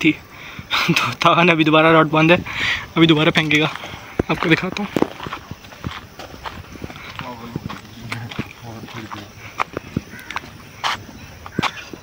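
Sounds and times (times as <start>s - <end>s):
faint men talking: 6.9s - 9.7s.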